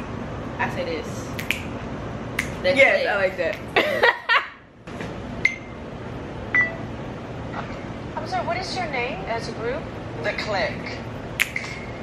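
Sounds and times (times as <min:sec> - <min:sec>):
room noise: 0:00.0 - 0:12.0
finger snaps: 0:01.4 - 0:01.7, 0:02.4 - 0:02.6, 0:11.4 - 0:11.8.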